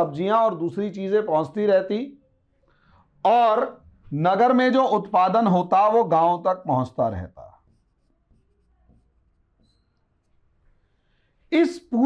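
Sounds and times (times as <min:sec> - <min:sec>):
marker drawing on whiteboard: 0:03.5 - 0:11.0.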